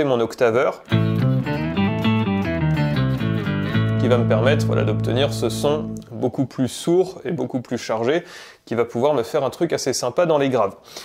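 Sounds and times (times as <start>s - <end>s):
electric guitar octave-down notes: 0.9s - 6.2s.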